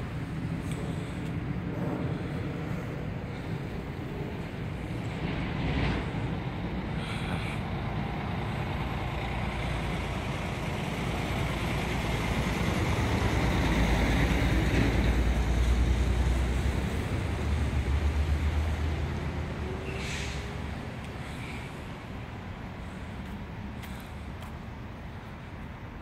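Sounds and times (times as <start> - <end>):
road traffic rumble: 0.0 - 26.0.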